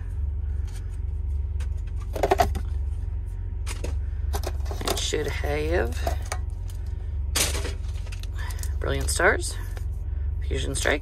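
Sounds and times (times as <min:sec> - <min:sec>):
car low rumble: 0:00.0 - 0:11.0.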